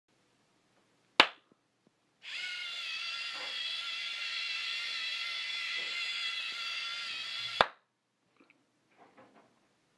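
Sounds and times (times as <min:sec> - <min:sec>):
high-pitched motor gear whine: 0:02.2 - 0:07.6.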